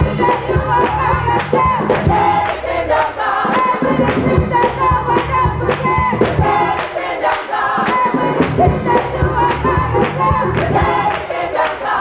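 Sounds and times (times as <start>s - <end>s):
women singing gospel in harmony: 0.0s - 12.0s.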